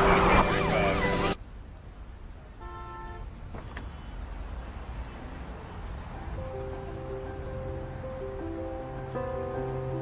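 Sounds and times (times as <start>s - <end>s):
city traffic rumble: 0.0s - 10.0s
car horn toot: 2.6s - 3.3s.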